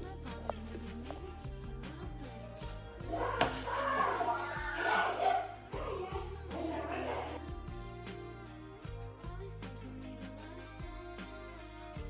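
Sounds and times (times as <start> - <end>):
steady bass line: 0.0 - 12.0
voices singing: 0.0 - 12.0.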